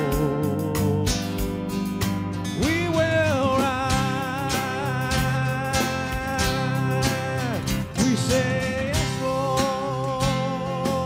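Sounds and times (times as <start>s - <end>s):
band playing guitars over a beat: 0.0s - 11.0s.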